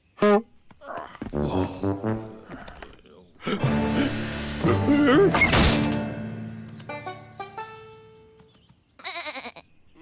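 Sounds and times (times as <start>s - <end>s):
background music: 1.2s - 8.5s
sheep bleat: 9.0s - 9.6s.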